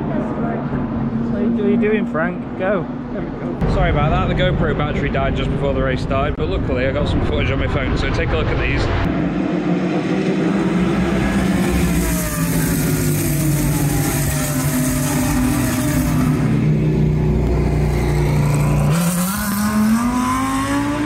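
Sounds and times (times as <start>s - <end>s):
race car engines at high revs: 9.0s - 21.0s.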